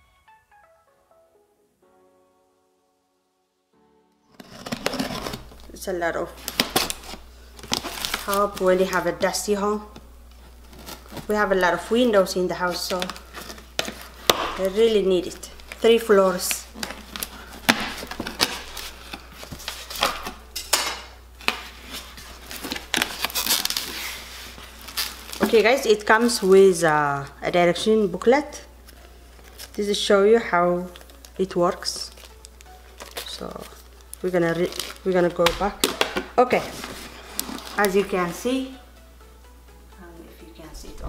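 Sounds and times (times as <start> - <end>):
soft background music: 0.0 - 41.0
cardboard flaps pulled open: 4.3 - 5.5
cardboard box handling crackles: 4.3 - 5.8, 6.4 - 9.4, 10.4 - 11.8, 12.7 - 14.4, 15.3 - 20.3, 21.6 - 26.6, 32.1 - 38.1
knife cutting cardboard box tape: 4.4 - 5.6, 16.8 - 20.3, 22.6 - 24.2.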